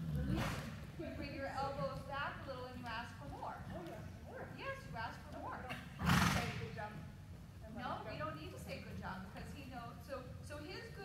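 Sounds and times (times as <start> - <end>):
horse trotting on dirt: 0.0 - 5.5.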